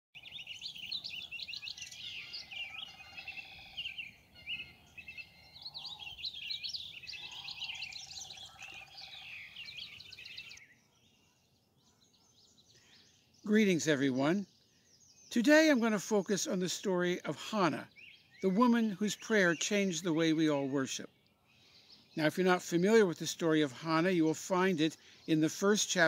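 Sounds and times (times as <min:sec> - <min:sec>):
low rapid bird trill: 0:00.2 - 0:26.0
songbirds chorus: 0:00.2 - 0:26.0.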